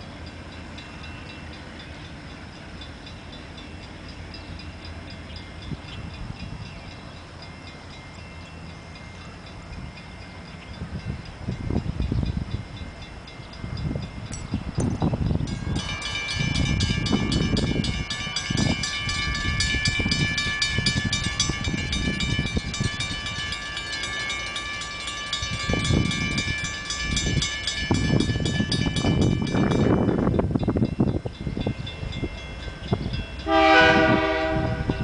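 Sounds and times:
crossing warning bell ringing: 0.0s - 35.0s
wind buffeting microphone: 5.2s - 8.1s, 9.5s - 24.2s, 25.0s - 35.0s.

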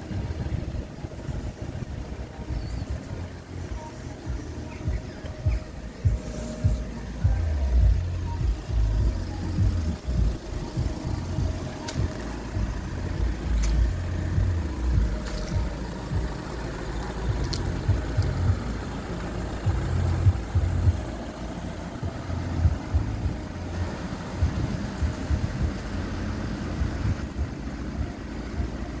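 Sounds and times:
diesel engine idling: 0.0s - 29.0s.

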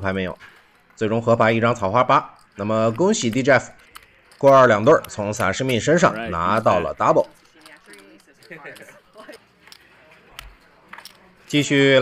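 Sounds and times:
poker chips clicking: 0.0s - 11.5s
low background voices: 0.0s - 12.0s.

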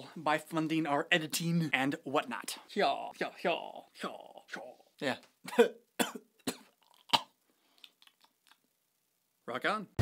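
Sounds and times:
man coughing: 5.5s - 7.3s.

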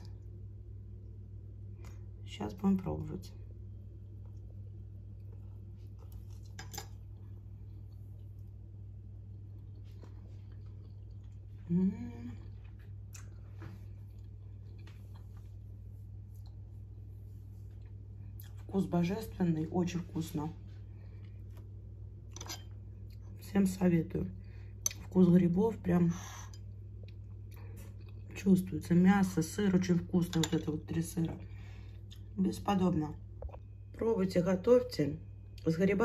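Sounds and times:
steady low hum: 0.0s - 36.0s
cutlery clinking on plate: 22.4s - 22.7s.

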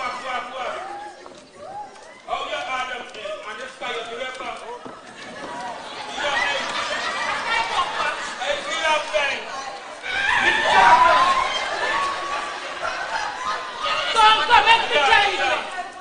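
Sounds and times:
voices talking and calling out: 0.0s - 16.0s.

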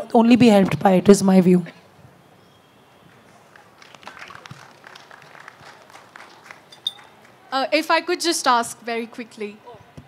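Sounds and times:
faint scattered applause: 3.1s - 7.6s.

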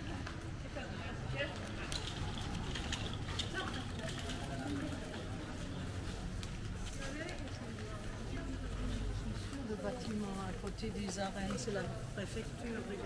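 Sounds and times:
chatter of passers-by: 0.0s - 13.0s.

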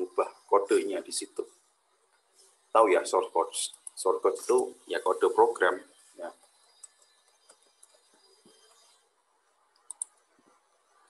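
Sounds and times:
computer mouse clicks: 6.4s - 10.3s.

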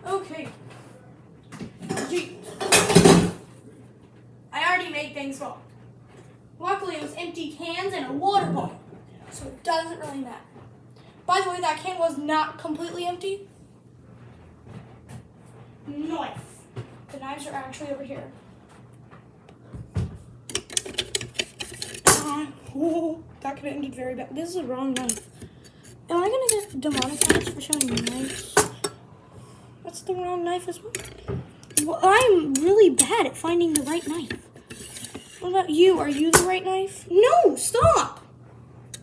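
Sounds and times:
utensils rattling in a drawer: 20.5s - 22.4s, 26.1s - 28.9s, 30.9s - 33.0s, 33.6s - 36.5s.

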